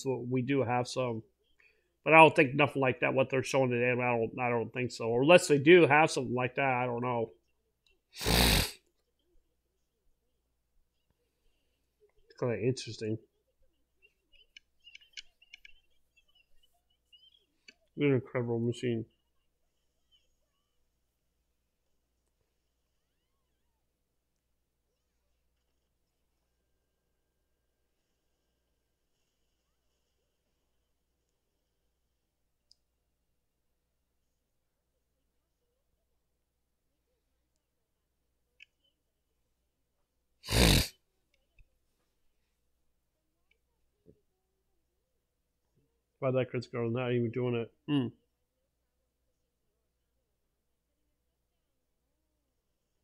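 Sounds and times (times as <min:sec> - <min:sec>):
person snorting breath: 0:08.2 - 0:08.8, 0:40.4 - 0:40.9.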